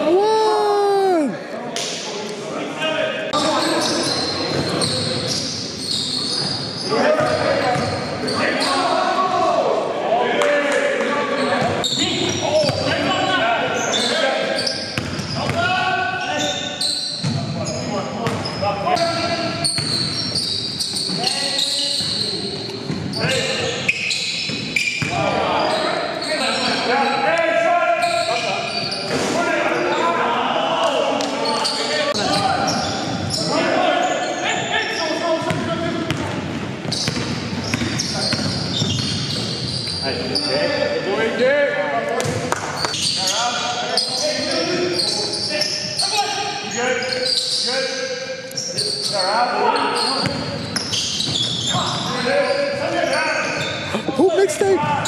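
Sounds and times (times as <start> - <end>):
players shouting: 0.0 - 1.4.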